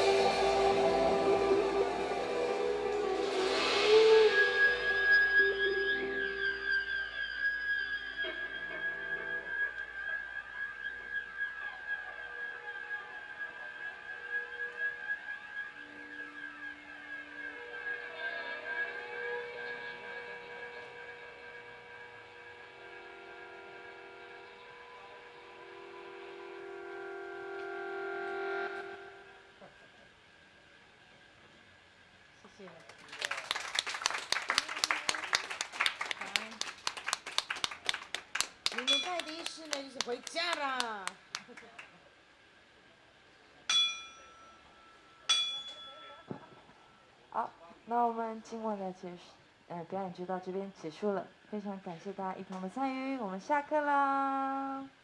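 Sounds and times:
high steady tone: 0.0s - 10.0s
live band sustained notes: 0.0s - 29.6s.

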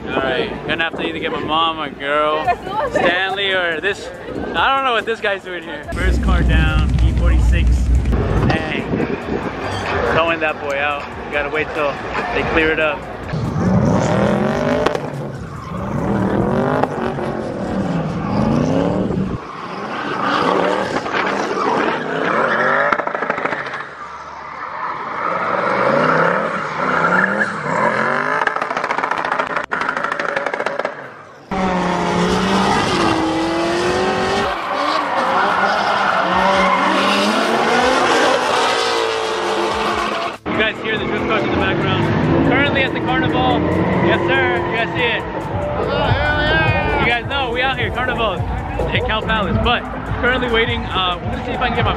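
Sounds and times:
engines revving: 5.6s - 51.9s.

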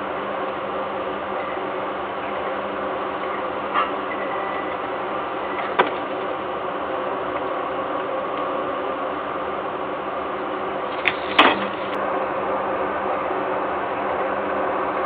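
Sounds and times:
hum and hiss with tones: 0.0s - 15.0s.

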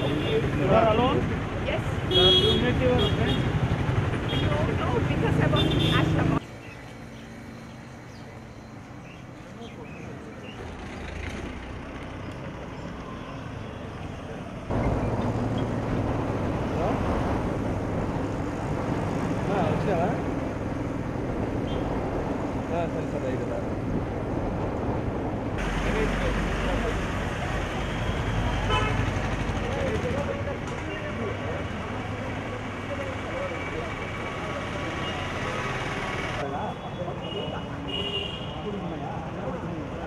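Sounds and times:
street traffic noise: 0.0s - 40.0s.

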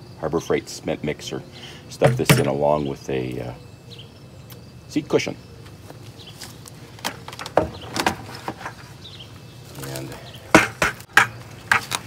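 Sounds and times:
plastic bucket knocks and clunks: 2.0s - 2.6s.

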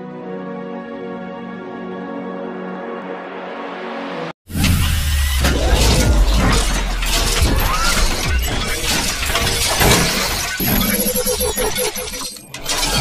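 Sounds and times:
music: 0.0s - 10.8s
crashing and shattering noise: 4.5s - 11.2s
deep bass rumble: 4.7s - 9.3s.

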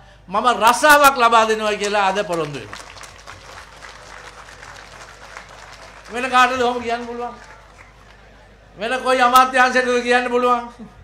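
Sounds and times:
audience applauding: 1.7s - 8.4s.

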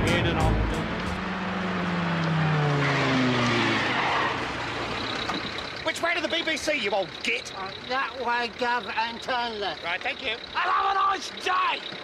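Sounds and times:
song playing: 0.0s - 1.3s
car engine approaching and slowing: 0.0s - 12.0s.

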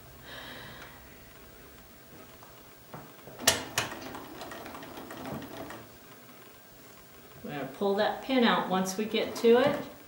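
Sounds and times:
sewing machine stitching: 3.4s - 5.9s, 9.0s - 10.0s.

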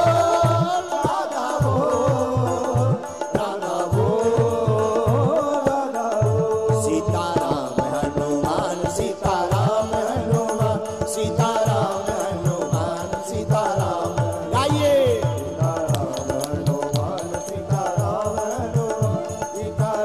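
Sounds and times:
drum steady beat: 0.0s - 20.0s
man singing devotional song: 0.0s - 20.0s.

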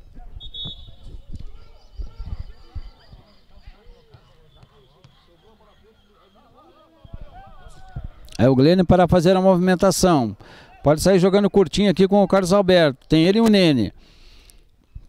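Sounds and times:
distant players calling out: 1.4s - 8.2s.

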